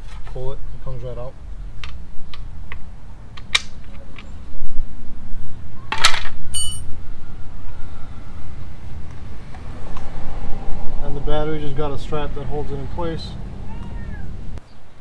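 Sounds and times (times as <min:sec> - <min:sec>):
high metallic ring: 0:06.5 - 0:07.0.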